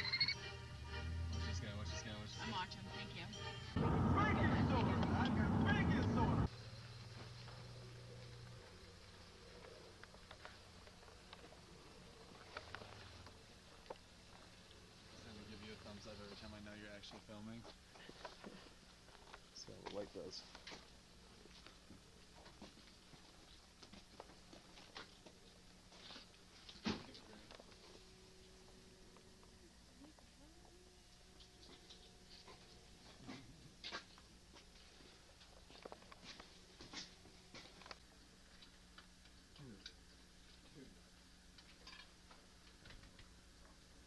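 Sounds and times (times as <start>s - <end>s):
low steady hum: 0.0s - 17.9s, 20.8s - 44.0s
faint ticks and rustles: 6.5s - 44.0s.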